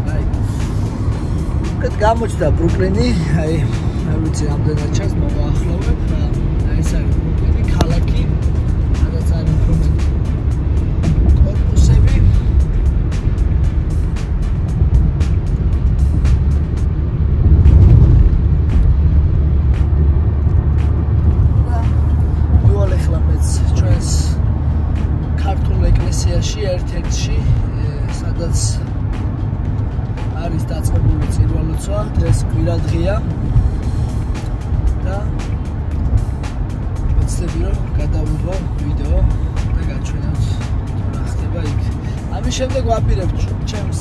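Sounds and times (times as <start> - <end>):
music playing: 0.0 - 44.0
road and engine rumble in car: 0.0 - 44.0.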